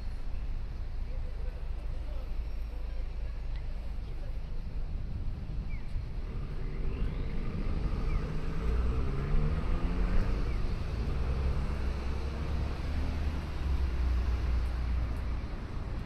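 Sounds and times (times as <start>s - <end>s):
vehicle engine passing by: 6.7s - 15.0s.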